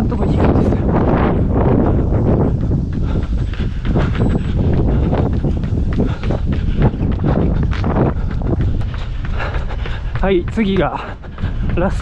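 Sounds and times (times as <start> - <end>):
running footfalls: 0.0 - 12.0
wind rumbling across microphone: 0.0 - 12.0.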